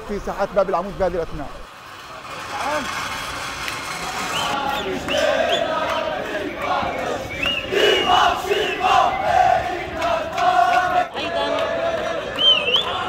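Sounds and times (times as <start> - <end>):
crowd of men chanting and shouting: 3.8 - 13.0.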